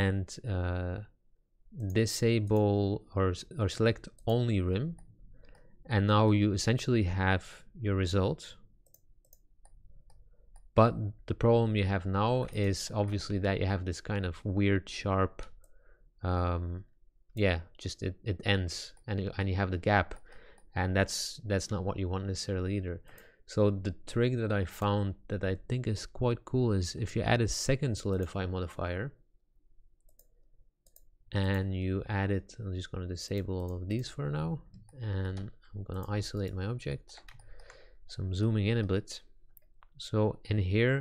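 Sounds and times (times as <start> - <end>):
man speaking: 0.0 - 1.1, 1.8 - 5.0, 5.9 - 8.6, 10.8 - 15.5, 16.2 - 20.2, 20.8 - 29.2, 31.3 - 37.3, 38.1 - 39.3, 40.0 - 41.0
computer mouse clicks: 8.8 - 10.7, 30.0 - 31.6, 33.3 - 37.7.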